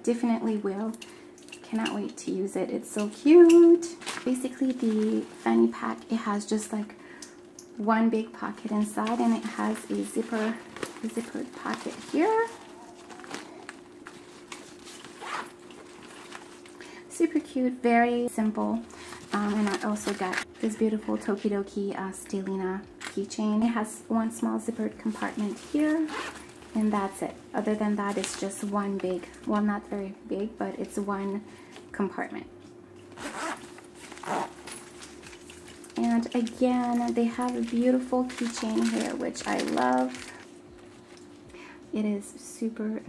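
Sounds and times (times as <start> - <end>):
steady low hum: 0.0 - 43.0
fabric bag rustling: 3.3 - 6.2, 8.5 - 16.8, 19.0 - 20.8, 25.0 - 29.2, 33.1 - 41.4
zipper being pulled: 9.1 - 16.6, 25.1 - 26.8, 33.1 - 36.0.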